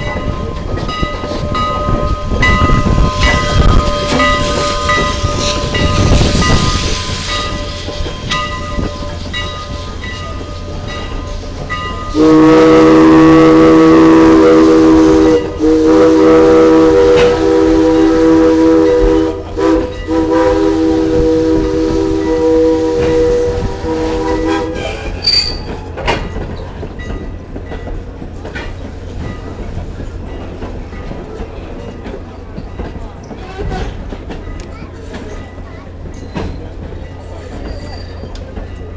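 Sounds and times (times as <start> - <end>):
steam locomotive chime whistle: 0.0 - 25.8
train rolling on rails: 0.0 - 38.9
brief high squeal: 24.8 - 25.7, 37.6 - 38.4.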